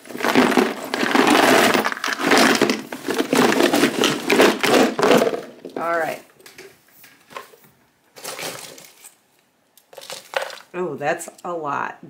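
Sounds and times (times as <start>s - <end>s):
trinkets clinking and rattling: 9.9s - 10.7s.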